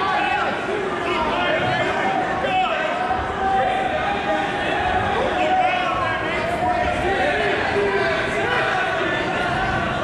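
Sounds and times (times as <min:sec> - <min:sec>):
people shouting in echoing gym: 0:00.0 - 0:10.0.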